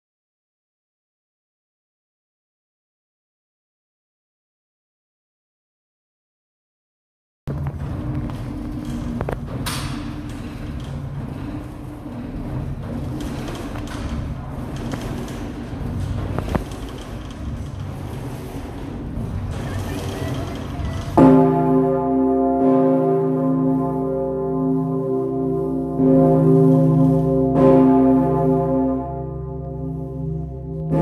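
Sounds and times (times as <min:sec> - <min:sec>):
sharp clicks and knocks: 0:07.5 - 0:11.7, 0:12.4 - 0:21.3
low hum and rumble of bell: 0:07.5 - 0:31.0.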